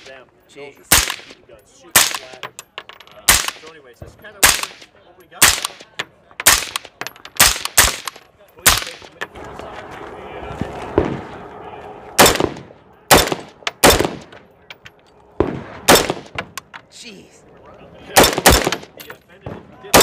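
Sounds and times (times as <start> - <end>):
crowd noise: 0.0 - 20.0
rifle firing single shots: 0.9 - 2.4, 3.3 - 3.7, 4.4 - 9.1, 12.2 - 14.4, 15.4 - 16.6, 18.1 - 19.0.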